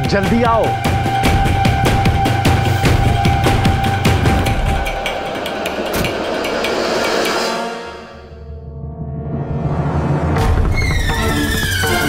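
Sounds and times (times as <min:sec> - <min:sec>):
score music with ticking percussion: 0:00.0 - 0:07.7.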